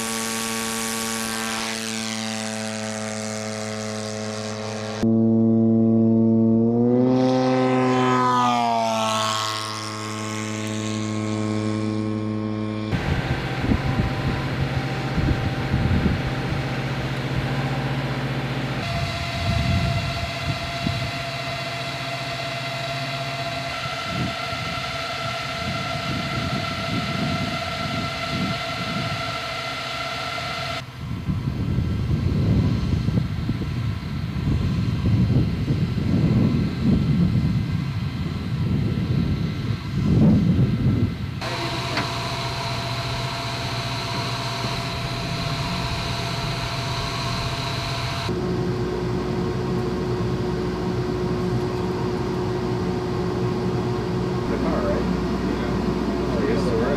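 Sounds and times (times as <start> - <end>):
generator hum and whine: 0.0 - 56.9
wind buffeting microphone: 12.7 - 22.9, 23.5 - 29.9, 30.8 - 56.9.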